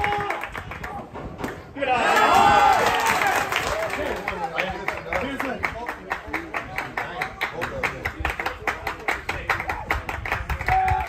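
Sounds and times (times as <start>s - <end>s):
rhythmic clapping: 3.1s - 11.0s.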